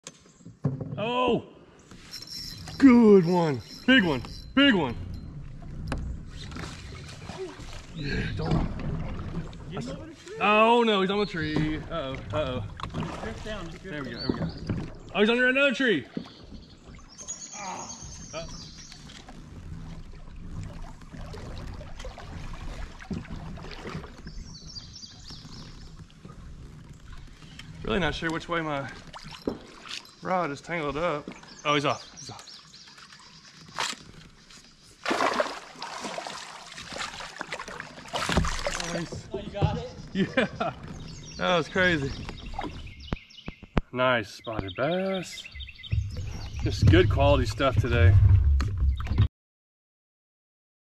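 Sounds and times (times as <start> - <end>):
birds chirping faintly: 0.1 - 19.3, 23.9 - 35.4, 38.6 - 47.8
steady low rumble: 45.9 - 48.8.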